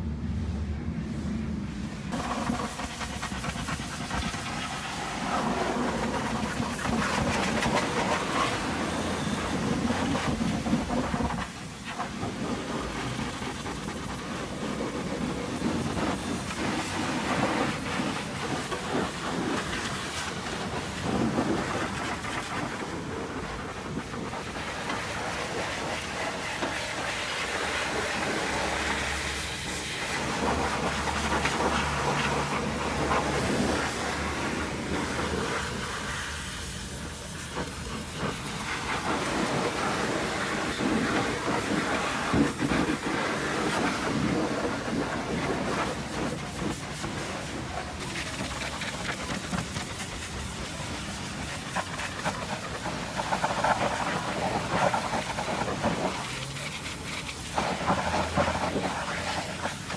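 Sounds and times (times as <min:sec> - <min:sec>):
pressure washer spraying metal: 0:02.1 - 0:59.9.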